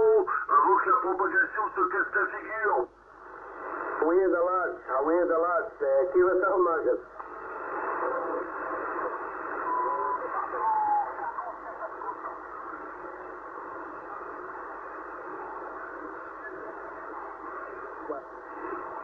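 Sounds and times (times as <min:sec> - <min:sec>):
distant radio voices: 0:00.0 - 0:19.0
radio static hiss: 0:00.0 - 0:19.0
short radio whistles: 0:07.4 - 0:11.2.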